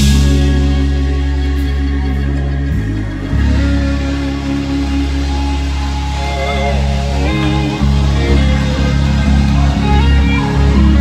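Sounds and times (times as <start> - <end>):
gospel band music: 0.0 - 11.0.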